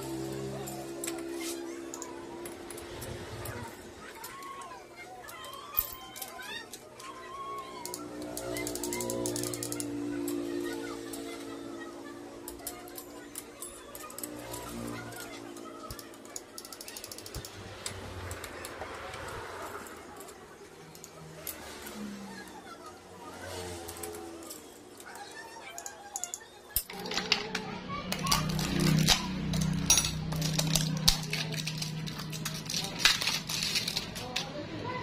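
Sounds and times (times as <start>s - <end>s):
hand tools clicking on metal: 4.2s - 10.4s, 12.5s - 21.6s, 23.8s - 34.5s.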